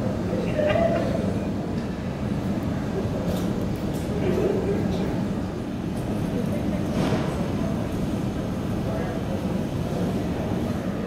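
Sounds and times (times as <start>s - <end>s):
airport terminal low rumble: 0.0s - 11.0s.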